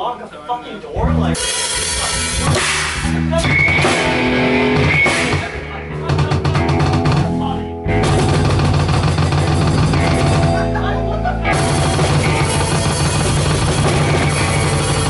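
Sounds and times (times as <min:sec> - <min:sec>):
distorted electric guitars: 0:01.0 - 0:15.0
drum kit pounding: 0:01.0 - 0:15.0.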